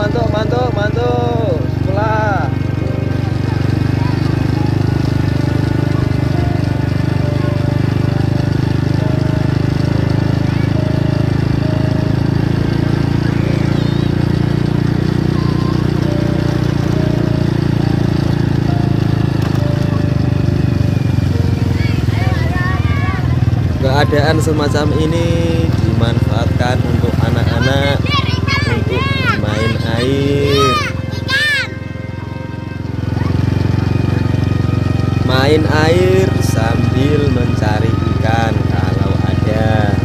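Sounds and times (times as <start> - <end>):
small motorcycle engine running: 0.0 - 40.0.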